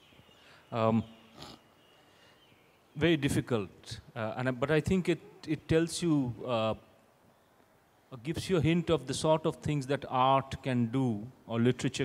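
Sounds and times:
low background hiss: 0:00.0 - 0:12.0
short breath: 0:01.4 - 0:02.5.

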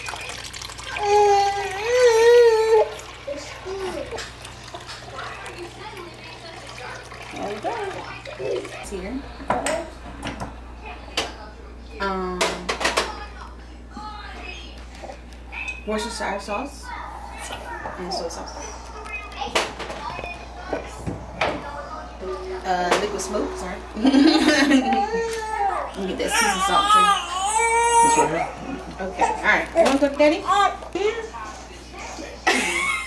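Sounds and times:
steady low hum: 0:03.0 - 0:33.0
children's voices: 0:05.0 - 0:09.3, 0:15.9 - 0:30.9.

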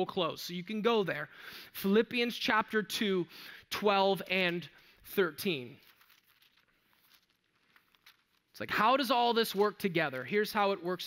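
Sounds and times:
pages rustling: 0:05.4 - 0:08.6.

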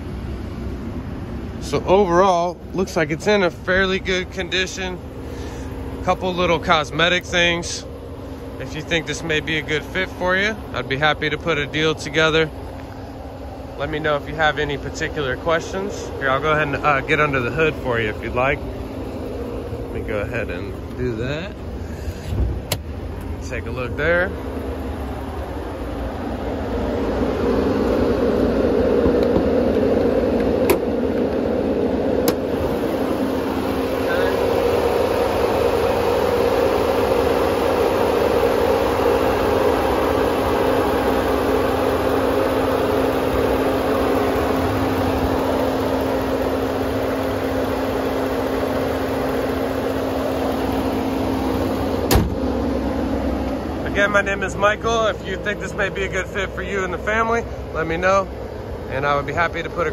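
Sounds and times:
truck engine idling: 0:00.0 - 0:59.9
hood shutting knock: 0:22.0 - 0:23.4, 0:29.0 - 0:31.4, 0:32.2 - 0:32.6, 0:50.7 - 0:52.6.

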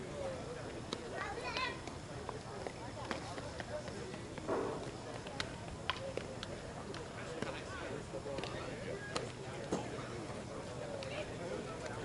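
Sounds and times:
indistinct distant talk: 0:00.0 - 0:12.0.

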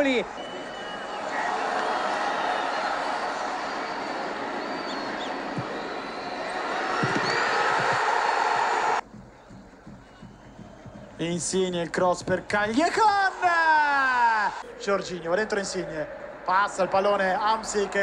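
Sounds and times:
stadium crowd roaring: 0:00.0 - 0:09.0, 0:12.9 - 0:18.0.

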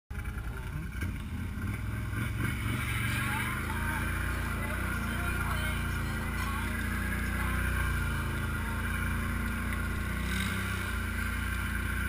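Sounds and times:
atv engine running: 0:00.1 - 0:12.0.

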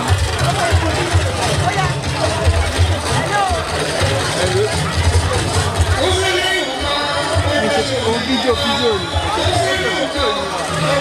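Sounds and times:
crowd chatter: 0:00.0 - 0:11.0
low drum beats: 0:00.0 - 0:11.0
party music with singing voice: 0:05.9 - 0:11.0.

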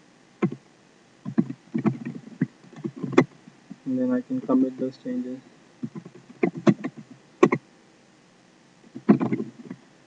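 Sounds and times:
keyboard keys mashing: 0:01.3 - 0:03.4, 0:05.8 - 0:07.6, 0:08.9 - 0:09.8.

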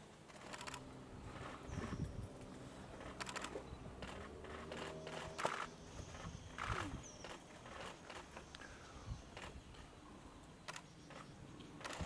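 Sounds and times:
faint outdoor ambience: 0:00.0 - 0:12.0
rapid camera shutter clicks: 0:00.3 - 0:00.8, 0:03.0 - 0:05.7, 0:11.8 - 0:12.0.

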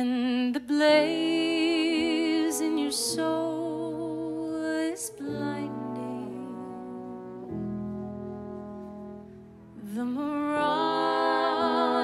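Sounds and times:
jazz band chord: 0:02.5 - 0:12.0.

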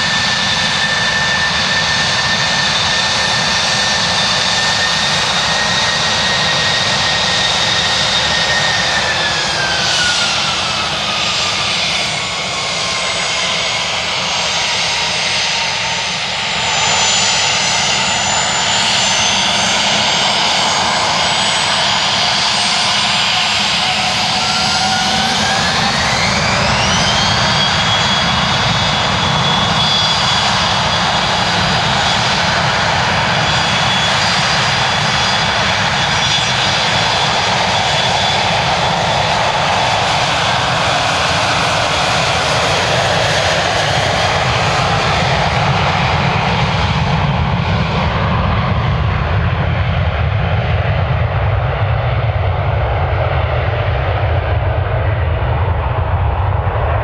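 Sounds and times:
jet engines high whine: 0:00.0 - 0:57.0
jet low rumble: 0:00.0 - 0:57.0.

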